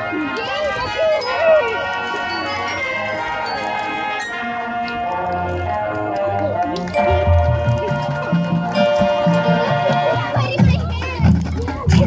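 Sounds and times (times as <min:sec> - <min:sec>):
marching band playing: 0:00.0 - 0:12.0.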